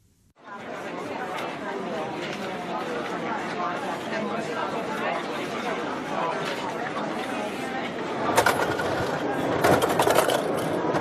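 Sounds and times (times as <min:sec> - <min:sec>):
crowd chatter indoors: 0:00.4 - 0:11.0.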